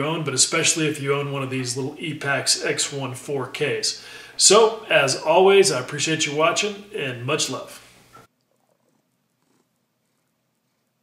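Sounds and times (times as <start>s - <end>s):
man's voice: 0.0s - 7.8s
faint cat purr: 8.4s - 11.0s.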